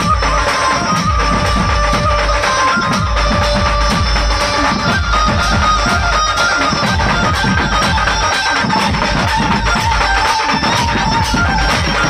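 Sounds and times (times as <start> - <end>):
band music over speakers: 0.0 - 12.0
heavy rapid drum beats: 0.0 - 12.0
wavering lead melody: 0.0 - 12.0.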